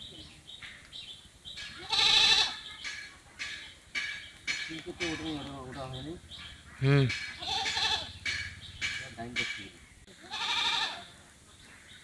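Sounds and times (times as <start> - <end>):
animal bleating: 1.8 - 2.6, 6.8 - 8.1, 10.2 - 11.1.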